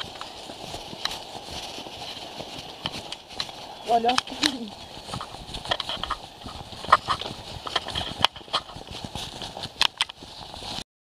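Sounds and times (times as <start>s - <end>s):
footsteps on stone path: 0.0s - 10.8s.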